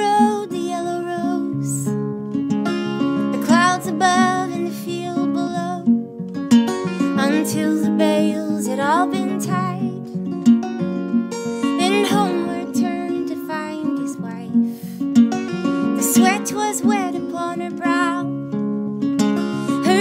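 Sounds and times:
woman singing folk ballad: 0:00.0 - 0:02.1, 0:03.1 - 0:06.1, 0:07.0 - 0:10.4, 0:11.4 - 0:15.1, 0:15.8 - 0:18.6, 0:19.4 - 0:20.0
acoustic guitar: 0:00.0 - 0:20.0.

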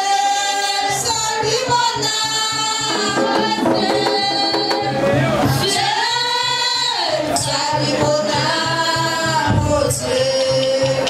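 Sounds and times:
voices singing: 0:00.5 - 0:11.0
hand drums: 0:00.8 - 0:11.0.

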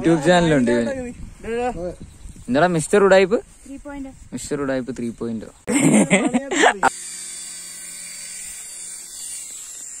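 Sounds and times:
toy helicopter motor buzzing: 0:06.6 - 0:10.0.

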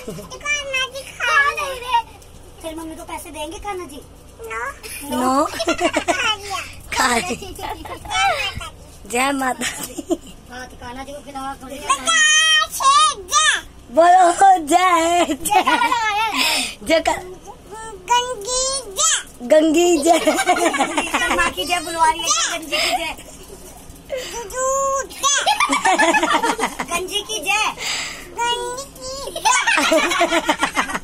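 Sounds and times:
girl's high-pitched voice: 0:00.3 - 0:02.9, 0:04.4 - 0:08.8, 0:10.9 - 0:14.6, 0:15.9 - 0:20.4, 0:21.2 - 0:23.2, 0:24.2 - 0:25.6, 0:26.9 - 0:29.8.

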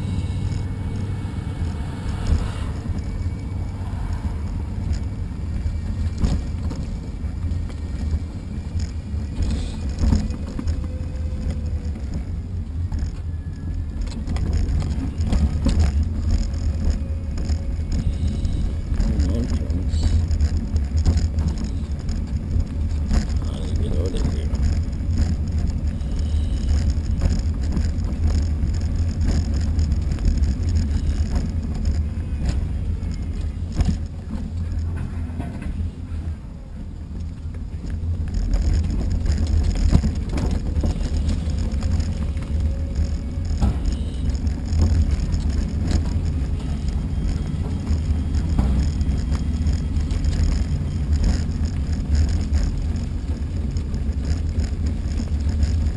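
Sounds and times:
rolling road noise: 0:00.0 - 0:55.9
wind rumbling on microphone: 0:00.0 - 0:55.9.

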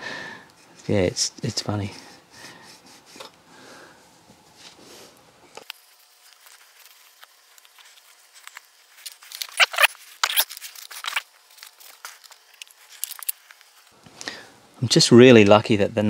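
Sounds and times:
cloth wiping plastic: 0:05.8 - 0:13.8.

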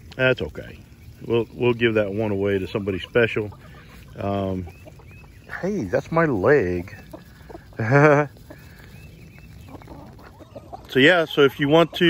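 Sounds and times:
ducks calling softly: 0:00.0 - 0:12.0
ducks pecking rustle: 0:00.0 - 0:12.0.

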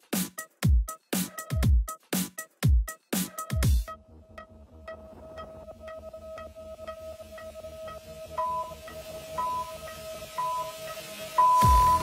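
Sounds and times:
electronic music with beat: 0:00.0 - 0:12.0
short electronic beeps: 0:07.9 - 0:12.0.

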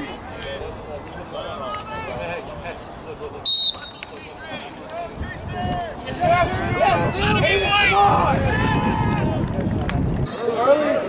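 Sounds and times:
people shouting: 0:06.2 - 0:09.4.

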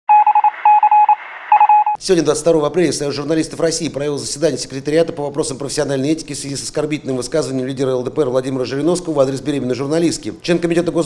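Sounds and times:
electronic beeps in morse-like pulses: 0:00.1 - 0:02.0.

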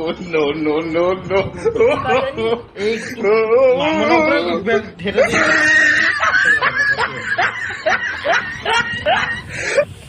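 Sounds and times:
woman laughing: 0:05.2 - 0:09.8.

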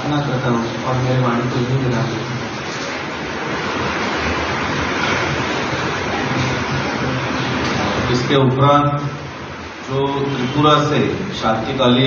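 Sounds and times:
loud rushing static hiss: 0:00.0 - 0:12.0.

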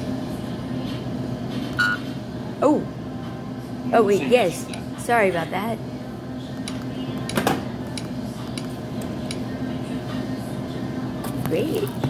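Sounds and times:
shop interior hum: 0:00.0 - 0:12.0.

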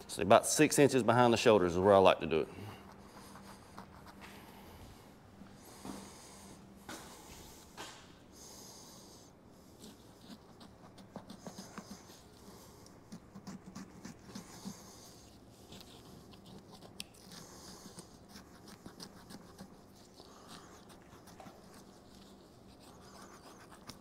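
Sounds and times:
faint low hum: 0:00.0 - 0:24.0.

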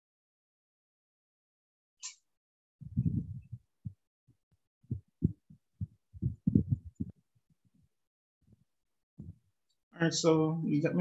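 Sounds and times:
muffled microphone handling thumps: 0:02.8 - 0:04.0, 0:04.9 - 0:07.2, 0:09.2 - 0:09.4.

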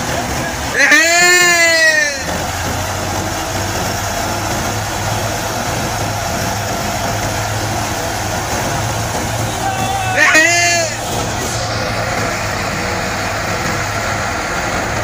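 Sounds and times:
tractor engine and thresher drone: 0:00.0 - 0:15.0.

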